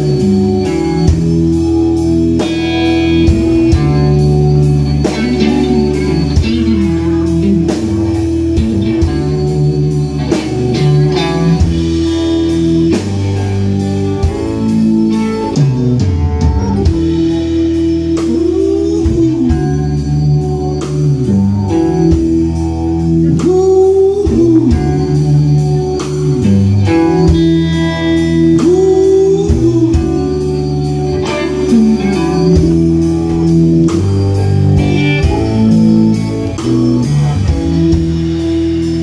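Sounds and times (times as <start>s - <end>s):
electric bass: 0.0s - 39.0s
electric guitar bending notes: 0.0s - 39.0s
organ: 0.0s - 39.0s
steady drum beat: 0.0s - 39.0s.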